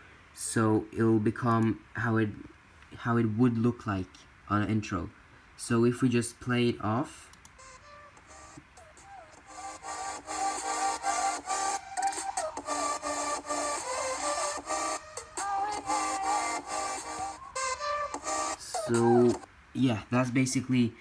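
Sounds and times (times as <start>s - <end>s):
electronic music through laptop speakers: 7.6s - 19.5s.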